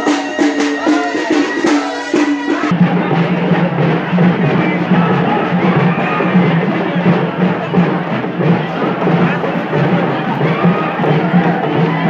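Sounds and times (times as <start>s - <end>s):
loud dense drumming: 0.0s - 12.0s.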